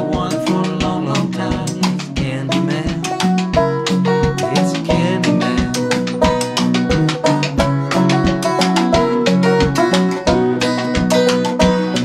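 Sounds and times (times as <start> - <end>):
drum and cymbal beat: 0.0 - 12.0
guitars playing: 0.0 - 12.0.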